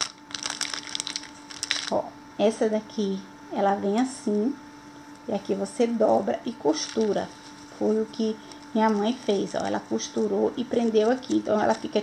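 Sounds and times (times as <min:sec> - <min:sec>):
plastic bag crinkling: 0:00.0 - 0:02.0, 0:06.7 - 0:12.0.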